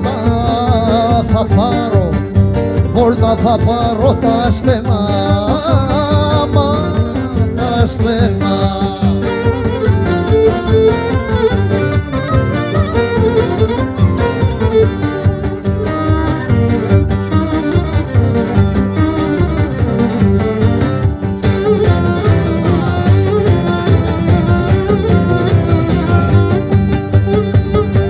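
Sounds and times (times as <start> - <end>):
bass guitar: 0.0 - 28.0
frame drum dance rhythm: 0.0 - 28.0
guitar: 0.0 - 28.0
mandolin: 0.0 - 28.0
bowed lyra melody: 8.6 - 28.0.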